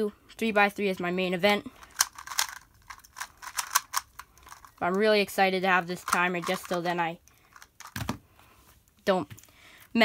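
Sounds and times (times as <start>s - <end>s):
puzzle cube clicks: 1.8s - 5.0s, 5.9s - 8.2s.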